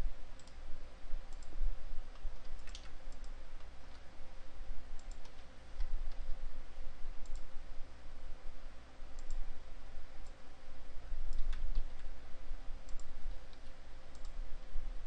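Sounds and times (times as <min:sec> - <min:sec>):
steady low hum: 0:00.0 - 0:15.0
computer mouse clicks: 0:00.4 - 0:00.6, 0:01.3 - 0:04.1, 0:04.9 - 0:06.2, 0:07.2 - 0:07.5, 0:09.2 - 0:09.4, 0:11.3 - 0:12.1, 0:12.9 - 0:14.4.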